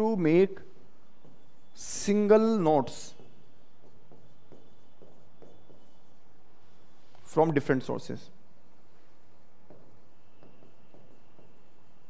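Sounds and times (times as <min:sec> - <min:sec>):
pen tapping on touchscreen: 0:03.2 - 0:06.0, 0:09.6 - 0:11.8.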